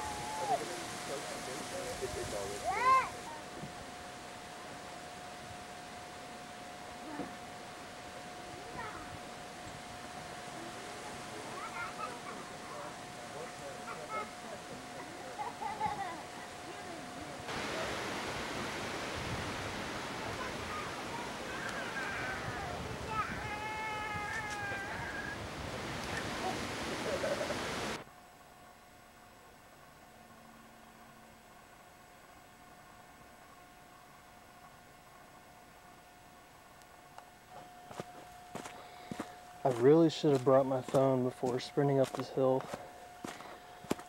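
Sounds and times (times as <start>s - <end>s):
faint indistinct voices: 0.0s - 18.2s
thin steady tone: 0.0s - 21.5s, 26.2s - 44.0s
wind rushing on microphone: 17.5s - 28.0s.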